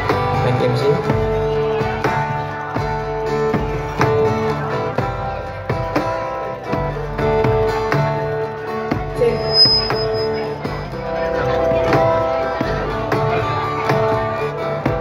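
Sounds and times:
acoustic guitar: 0.0s - 15.0s
bass guitar: 0.0s - 15.0s.

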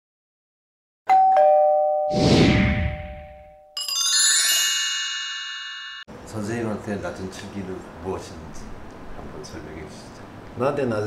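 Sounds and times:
shimmering bell-like sparkle: 1.4s - 6.1s
whoosh: 2.1s - 3.5s.

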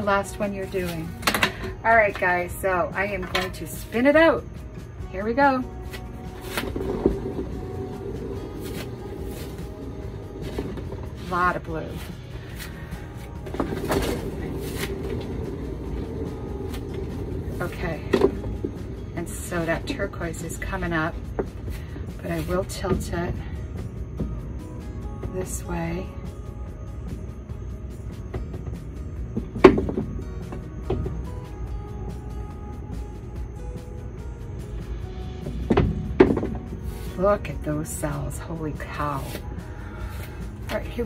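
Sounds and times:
soft background music: 0.0s - 41.0s
paint spinner humming: 3.7s - 41.0s.

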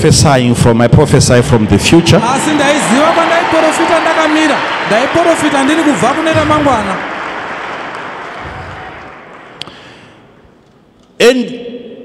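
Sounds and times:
large crowd applauding in hall: 1.2s - 10.4s.

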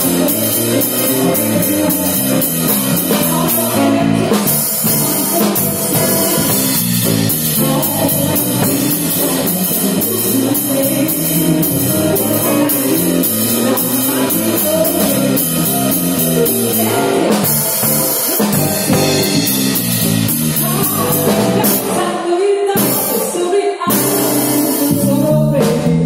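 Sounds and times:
bass guitar: 0.0s - 23.3s, 23.9s - 26.0s
electric guitar: 0.0s - 23.3s.

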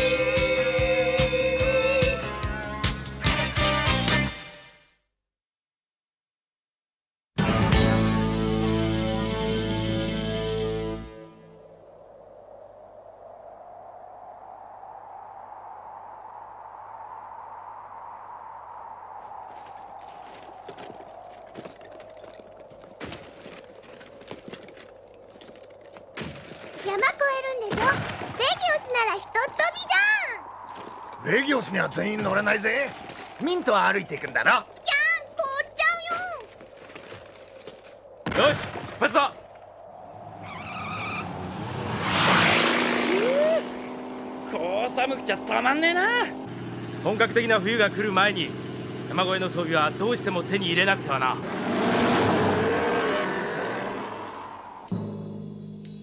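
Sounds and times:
cartoon wind howling: 11.1s - 26.0s, 27.0s - 47.2s, 50.2s - 55.0s
cartoon vehicle engines droning: 40.2s - 55.8s.

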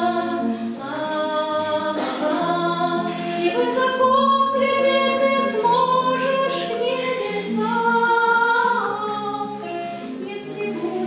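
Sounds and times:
group of voices singing: 0.0s - 11.0s.

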